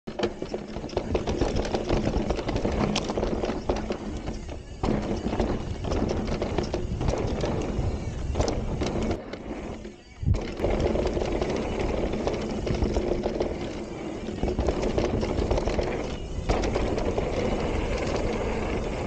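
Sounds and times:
bike frame knocking: 0:00.1 - 0:09.2, 0:10.3 - 0:19.0
tyres rolling over roots: 0:00.1 - 0:19.0
wind on microphone: 0:01.0 - 0:19.0.

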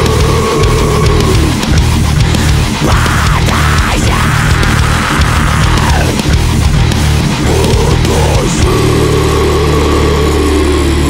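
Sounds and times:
distorted guitar chord ringing: 0:00.0 - 0:11.0.

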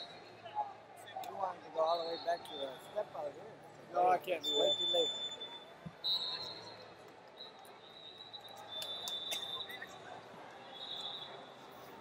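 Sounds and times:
background chatter: 0:00.0 - 0:12.0.

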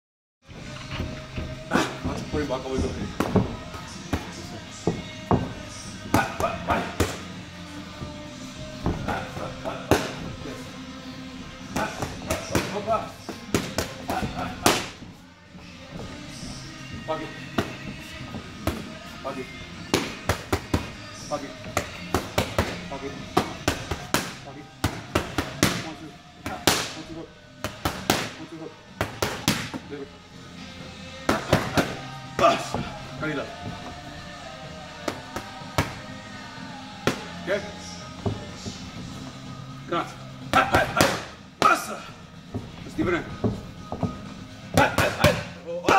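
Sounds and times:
background music: 0:00.4 - 0:45.9.

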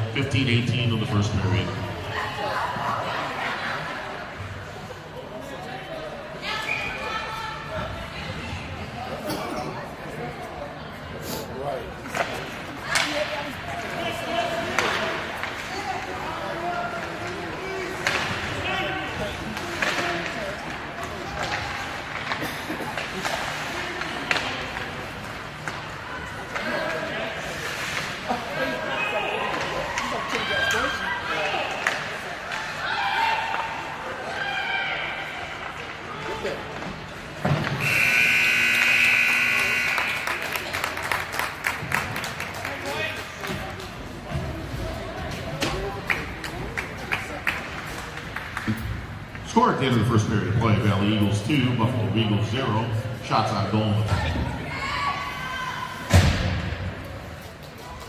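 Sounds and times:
people talking: 0:00.0 - 0:01.8, 0:49.4 - 0:54.9
hockey sticks and puck clacking: 0:12.0 - 0:28.4, 0:31.7 - 0:33.7, 0:35.6 - 0:49.4
scoreboard horn blast: 0:37.8 - 0:40.3.

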